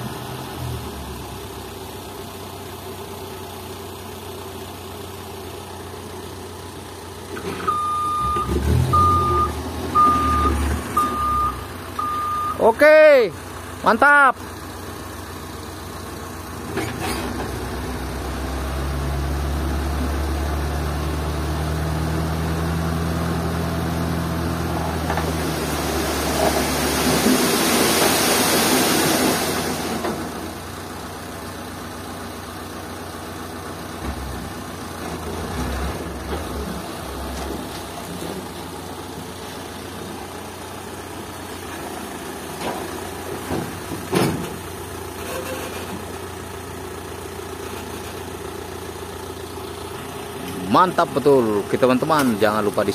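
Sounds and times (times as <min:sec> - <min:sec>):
truck engine running: 0:13.3 - 0:27.0, 0:29.7 - 0:52.9
truck bed clunk: 0:42.6 - 0:46.0.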